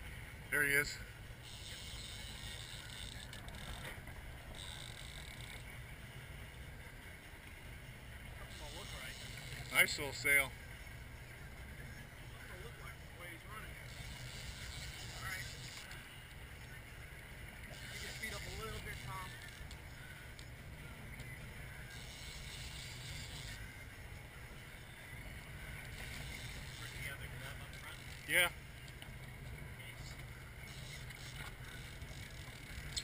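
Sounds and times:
boat engine rumbling: 0:00.0 - 0:33.0
water noise: 0:00.0 - 0:33.0
wind: 0:00.0 - 0:33.0.

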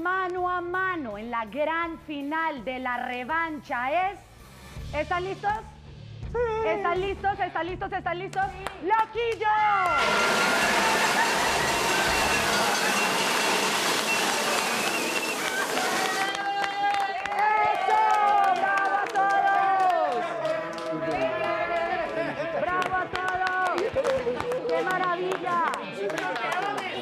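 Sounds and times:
people clapping: 0:08.3 - 0:27.0
people yelling and whooping: 0:09.7 - 0:22.9
confetti cannon air blast: 0:10.0 - 0:16.4.

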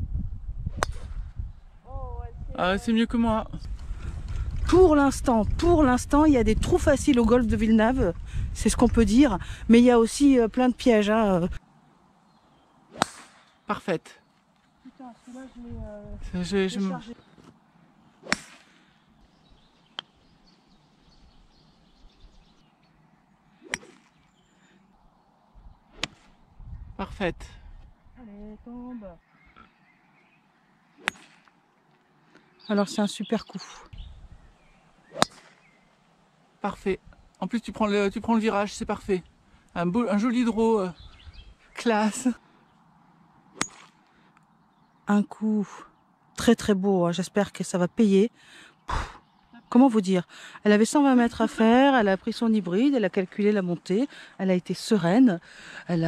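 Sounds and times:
golf club striking ball: 0:00.8 - 0:01.2, 0:12.9 - 0:13.6, 0:18.2 - 0:18.7, 0:31.0 - 0:31.6, 0:35.0 - 0:35.8, 0:43.5 - 0:44.0.

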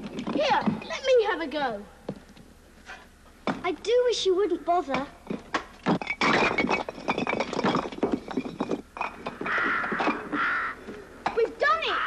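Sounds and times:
bricks scraping and clinking: 0:05.3 - 0:10.2
falling rubble: 0:05.3 - 0:11.4.

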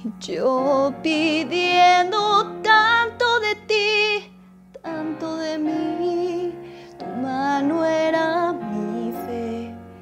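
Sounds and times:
woman singing pop ballad: 0:00.0 - 0:10.0.

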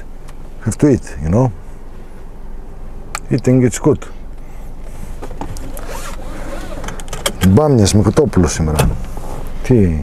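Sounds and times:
car cabin rumble: 0:00.0 - 0:10.0
rustling road noise: 0:00.0 - 0:10.0.

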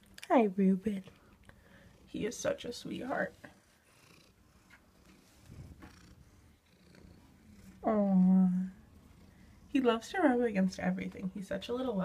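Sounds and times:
cat purring: 0:01.0 - 0:12.0.

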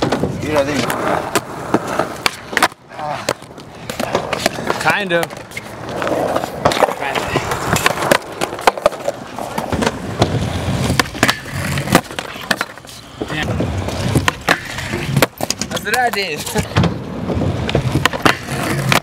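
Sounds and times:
skateboard rolling on concrete: 0:00.0 - 0:19.0
skateboard tail clacks: 0:00.0 - 0:19.0.

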